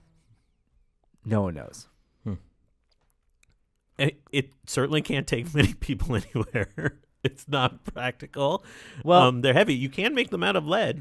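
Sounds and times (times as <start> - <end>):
man saying hmm: 2.2 - 2.6.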